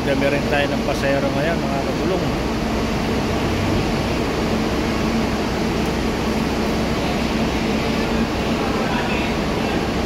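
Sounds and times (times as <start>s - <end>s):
bus engine humming: 2.1s - 10.0s.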